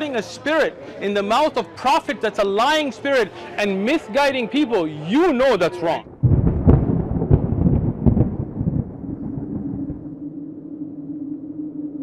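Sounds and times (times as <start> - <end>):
deep rumbling boom with cracks: 6.1 - 10.3
low steady drone tone: 9.0 - 12.0.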